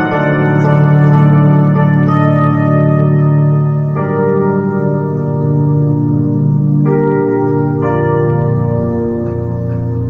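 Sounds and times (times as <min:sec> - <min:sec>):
electronic keyboard chords: 0:00.0 - 0:10.0.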